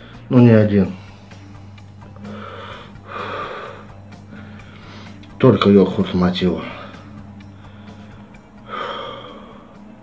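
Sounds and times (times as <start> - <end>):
man breathing heavily hissing: 0.0 - 0.3, 0.9 - 5.3, 6.6 - 10.0.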